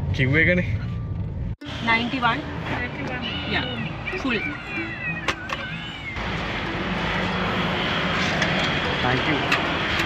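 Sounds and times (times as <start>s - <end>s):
vehicle engine roar: 0.0s - 10.0s.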